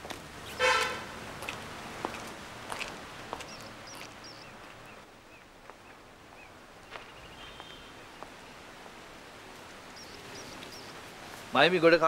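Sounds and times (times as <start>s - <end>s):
car horn toot: 0.6s - 1.1s.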